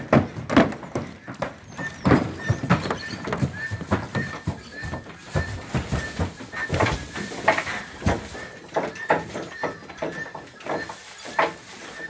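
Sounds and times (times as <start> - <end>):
horse hooves on trailer ramp: 0.0 - 12.0.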